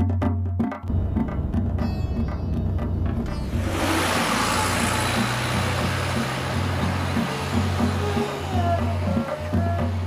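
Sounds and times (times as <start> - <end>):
vehicle road noise: 0.9 - 10.0.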